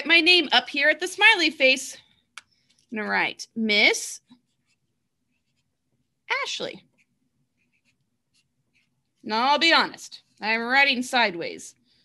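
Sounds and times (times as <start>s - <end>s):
marker writing on paper: 4.2s - 5.8s, 6.8s - 9.1s.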